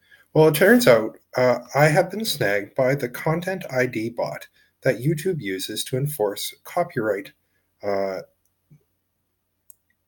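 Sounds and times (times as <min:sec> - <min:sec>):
man saying uh: 0:00.4 - 0:08.2.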